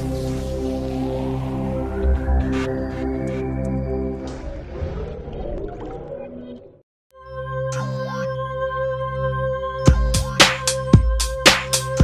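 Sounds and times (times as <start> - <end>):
electronic intro music: 0.0 - 8.0.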